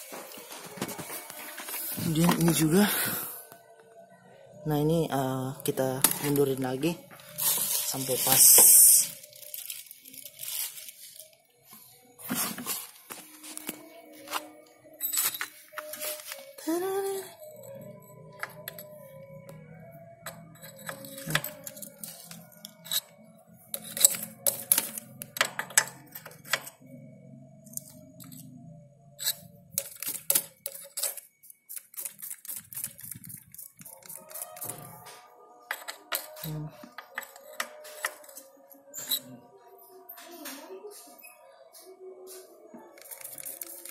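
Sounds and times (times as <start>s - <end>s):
faint background music: 0.0s - 43.9s.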